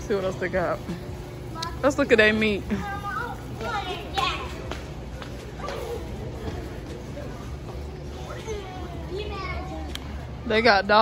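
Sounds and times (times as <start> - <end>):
scattered speech: 0.0 - 11.0
steady low hum: 0.0 - 11.0
children's voices: 1.3 - 10.4.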